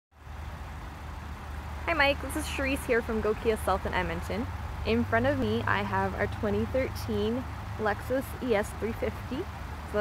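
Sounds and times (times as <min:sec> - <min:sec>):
faint hiss: 0:00.2 - 0:10.0.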